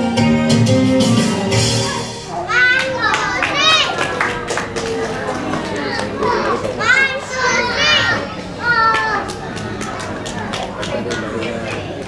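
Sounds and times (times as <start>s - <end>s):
young children chattering: 1.6s - 12.0s
children shouting high-pitched: 1.8s - 4.4s, 5.6s - 10.1s.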